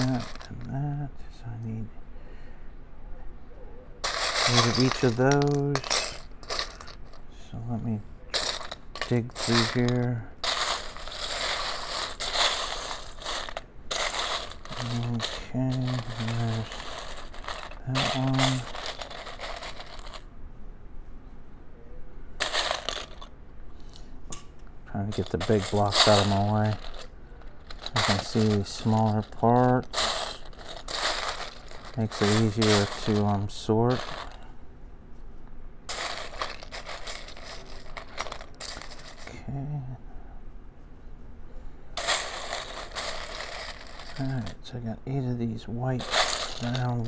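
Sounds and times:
plastic bricks rattling and clicking: 0:00.0 - 0:00.7, 0:04.0 - 0:07.2, 0:08.3 - 0:20.2, 0:22.4 - 0:23.3, 0:25.1 - 0:34.3, 0:35.9 - 0:39.3, 0:42.0 - 0:44.6, 0:46.0 - 0:47.0.

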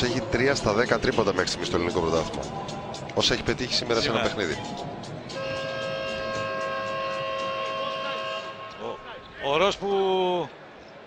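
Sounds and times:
arena horn blast: 0:05.3 - 0:09.3.

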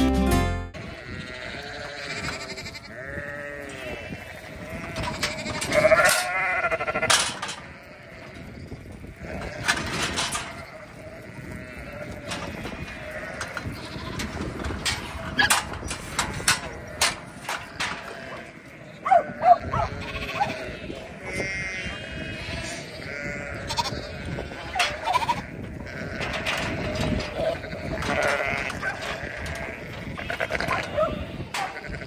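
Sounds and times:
background music: 0:00.0 - 0:00.8
sheep and lambs bleating: 0:00.0 - 0:32.0.

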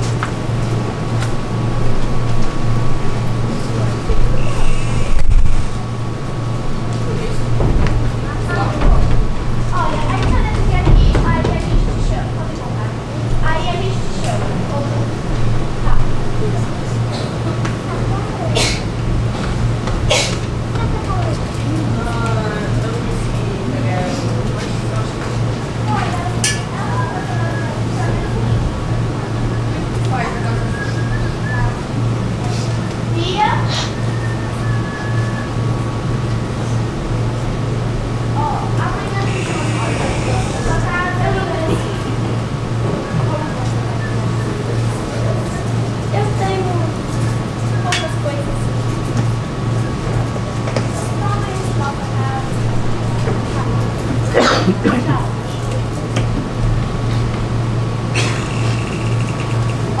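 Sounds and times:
distant actors speaking: 0:00.0 - 1:00.0
steady low hum: 0:00.0 - 1:00.0
faint distant voices: 0:02.8 - 0:49.2.

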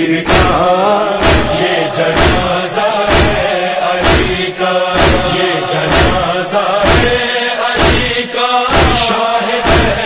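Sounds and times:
person chanting: 0:00.0 - 0:10.0
heavy beat: 0:00.2 - 0:10.0.

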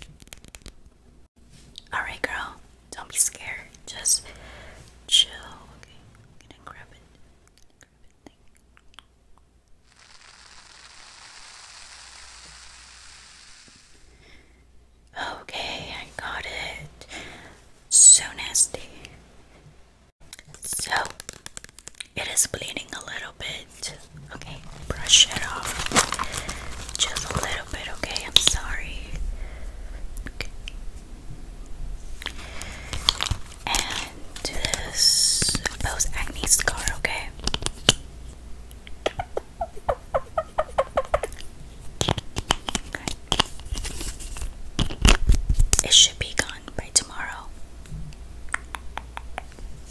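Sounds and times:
steady hiss: 0:09.8 - 0:14.8.

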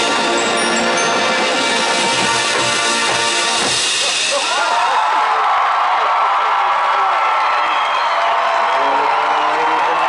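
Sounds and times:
stadium crowd cheering and applauding: 0:00.0 - 0:10.0
whistles: 0:07.4 - 0:09.0.

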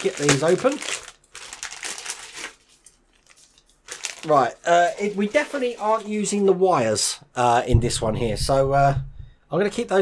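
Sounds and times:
plastic bag crinkling: 0:00.0 - 0:06.4.

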